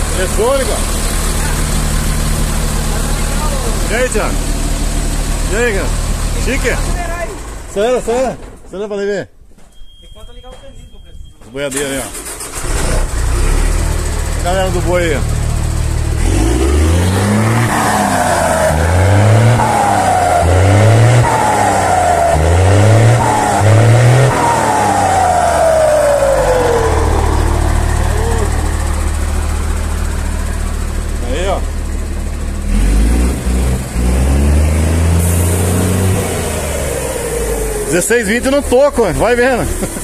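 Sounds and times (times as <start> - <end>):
diesel engine revving: 0.0 - 8.2, 11.7 - 40.0
turbocharger whistle: 17.1 - 28.8.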